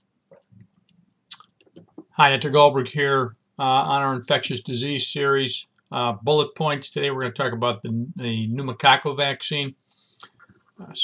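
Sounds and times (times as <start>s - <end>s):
man sipping and swallowing: 0.2s - 2.1s.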